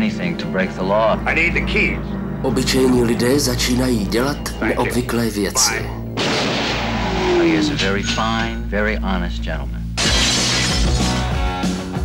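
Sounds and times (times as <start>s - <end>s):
rock music: 9.8s - 12.0s
glass shattering: 10.0s - 11.2s.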